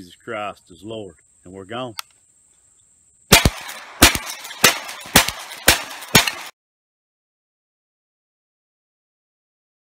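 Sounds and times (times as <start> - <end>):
rifle shots: 3.3 - 6.6.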